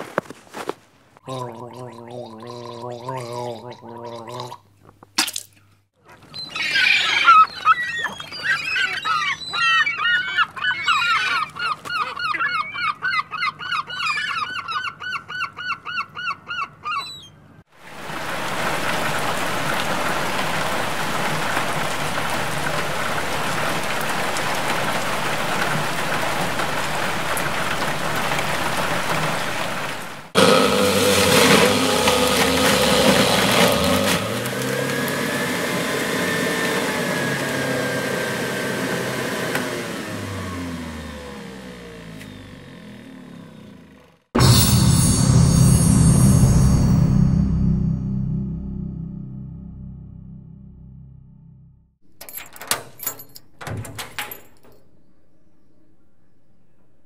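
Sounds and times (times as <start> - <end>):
seagulls calling: 6.1 - 17.5
heavy rain: 17.8 - 36.6
steady tones and gliding pitches: 44.4 - 51.9.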